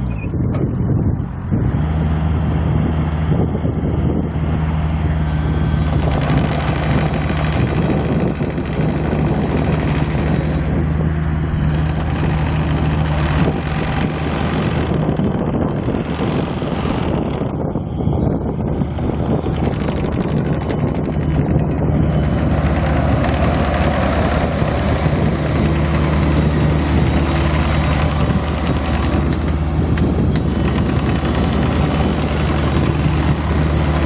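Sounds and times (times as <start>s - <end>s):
diesel engine idling: 0.0s - 34.0s.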